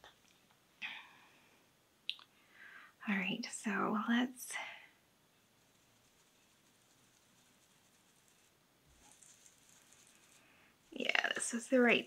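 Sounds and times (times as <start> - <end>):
foam dauber rubbing on paper: 5.6 - 11.4.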